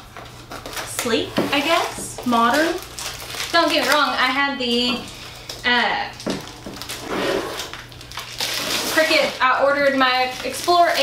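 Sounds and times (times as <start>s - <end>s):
plastic wrapping crinkling: 0.0s - 11.0s.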